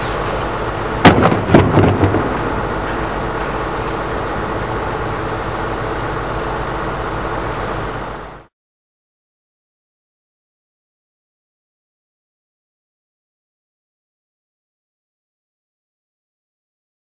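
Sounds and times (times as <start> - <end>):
loud metal impact: 0.0 - 3.8
steady background hum: 0.0 - 8.5.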